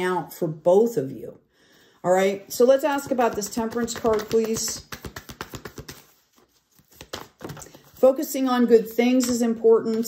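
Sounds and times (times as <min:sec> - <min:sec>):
cards clicking and flicking: 0:03.3 - 0:07.8.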